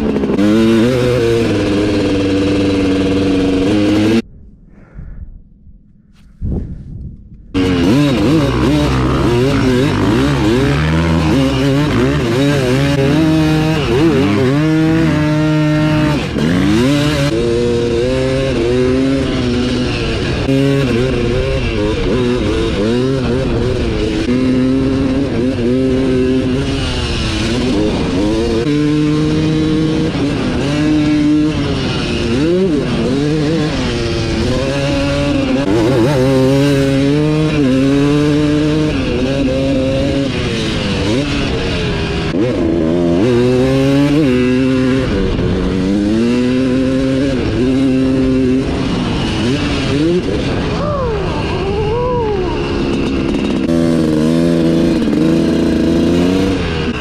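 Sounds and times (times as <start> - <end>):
dirt bike engine revving: 0.0 - 4.2, 7.5 - 57.0.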